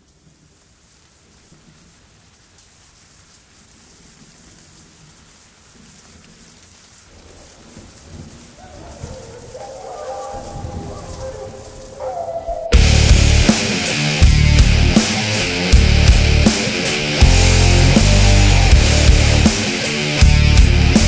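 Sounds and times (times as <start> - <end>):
rain hiss: 0.0 - 21.0
thunder rumbles: 7.2 - 13.6.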